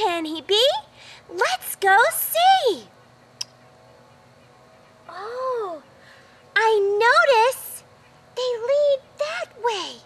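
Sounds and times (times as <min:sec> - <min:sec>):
faint outdoor background: 0:00.0 - 0:10.0.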